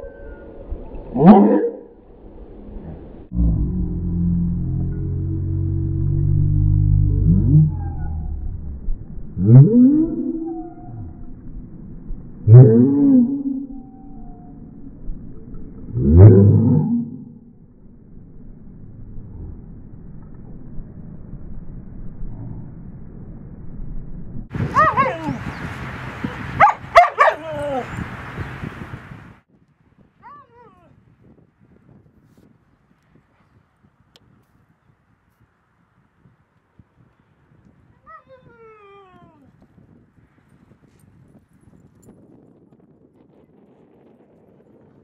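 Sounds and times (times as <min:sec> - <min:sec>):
slowed dog call deep moan: 0:02.5 - 0:11.5, 0:12.3 - 0:14.8, 0:15.8 - 0:17.5.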